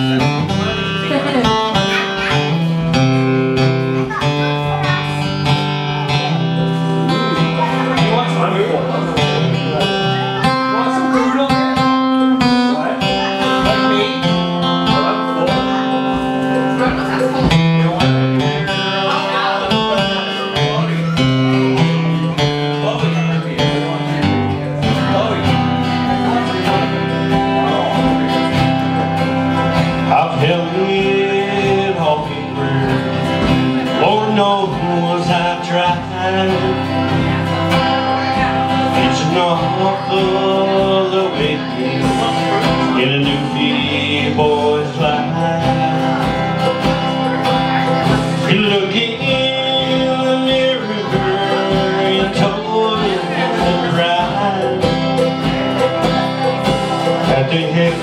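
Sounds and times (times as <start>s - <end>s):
acoustic guitars strummed: 0.0s - 58.0s.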